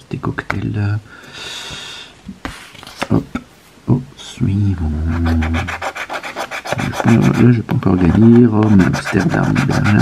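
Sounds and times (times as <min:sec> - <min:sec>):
breathy exhale: 0:01.1 - 0:02.2.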